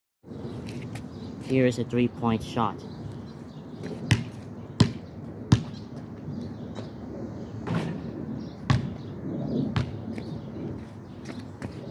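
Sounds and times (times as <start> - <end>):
basketball bouncing on asphalt: 3.8 - 7.0, 7.6 - 11.9.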